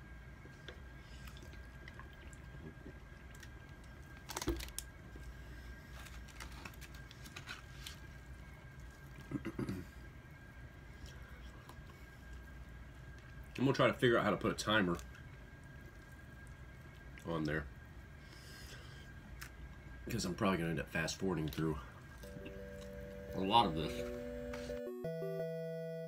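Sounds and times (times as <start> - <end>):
gulping and swallowing water: 0.7 - 3.8
tearing and chewing food: 1.2 - 9.6.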